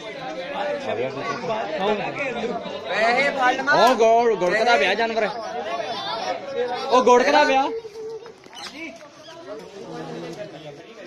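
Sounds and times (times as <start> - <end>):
men's voices chattering: 0.0 - 11.0.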